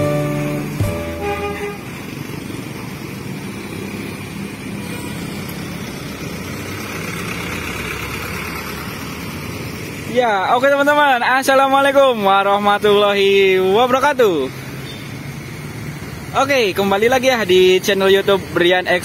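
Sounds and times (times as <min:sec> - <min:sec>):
musical notes stepping in pitch: 0:00.0 - 0:01.9
bus pulling away: 0:00.0 - 0:19.0
passing cars engine and tyre noise: 0:00.0 - 0:19.0.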